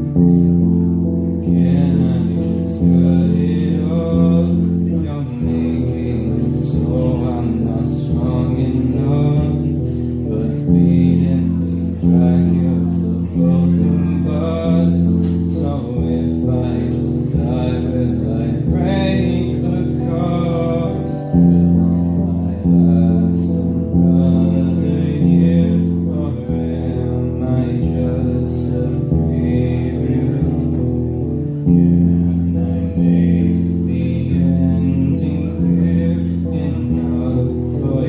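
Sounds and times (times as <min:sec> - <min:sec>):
guitar accompaniment: 0:00.0 - 0:38.0
man singing sustained notes: 0:00.0 - 0:38.0.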